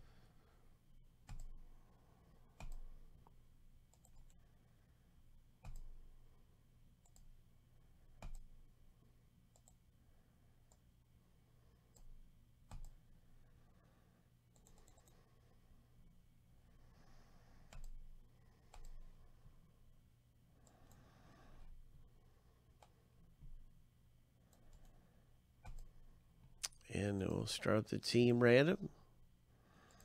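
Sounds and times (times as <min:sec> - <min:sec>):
low room hum: 0:00.0 - 0:30.0
computer mouse and keyboard clicks: 0:01.2 - 0:01.6, 0:02.5 - 0:03.0, 0:03.9 - 0:04.4, 0:05.6 - 0:06.0, 0:07.0 - 0:07.3, 0:08.2 - 0:08.5, 0:09.5 - 0:09.8, 0:11.9 - 0:13.0, 0:14.5 - 0:15.3, 0:17.6 - 0:18.0, 0:18.6 - 0:19.1, 0:25.6 - 0:26.0.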